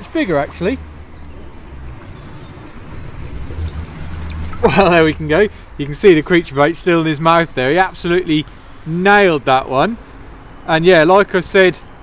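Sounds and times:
water splashing and swirling: 0.0s - 8.8s
low steady rumble: 0.0s - 9.0s.

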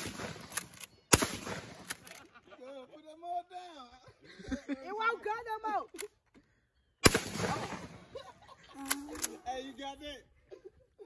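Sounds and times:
shotgun blast with echo: 1.1s - 1.8s, 7.0s - 8.0s.

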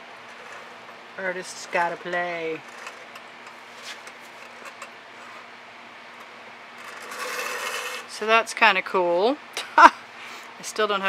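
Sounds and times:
board rubbing on table: 6.8s - 8.1s
tool scraping wet paint: 6.8s - 8.1s.

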